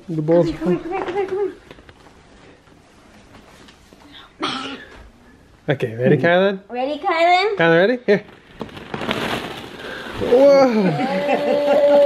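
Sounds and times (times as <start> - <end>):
plastic balls clattering: 8.1 - 12.0.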